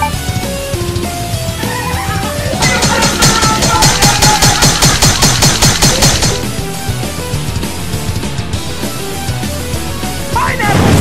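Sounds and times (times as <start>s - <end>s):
background music: 0.0s - 11.0s
rapid stab sound effects: 2.5s - 7.3s.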